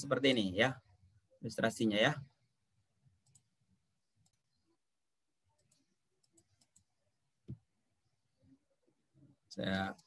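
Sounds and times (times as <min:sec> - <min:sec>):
computer mouse clicks: 0:03.2 - 0:03.6, 0:04.2 - 0:04.6, 0:05.5 - 0:07.7.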